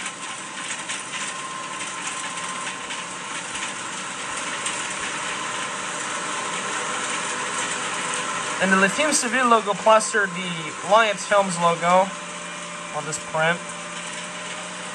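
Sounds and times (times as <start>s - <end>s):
noisy drone from television: 0.0s - 14.9s.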